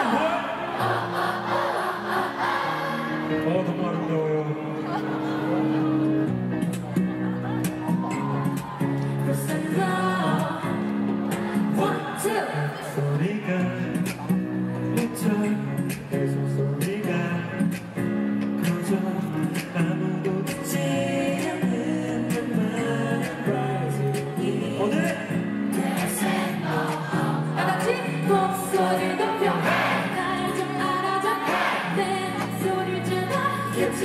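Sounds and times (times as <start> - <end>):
woman singing into microphone: 9.1 - 10.9, 11.6 - 13.1, 26.0 - 34.0.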